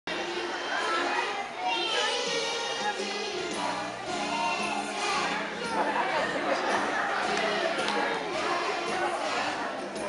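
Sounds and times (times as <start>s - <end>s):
young children chattering: 0.1s - 10.0s.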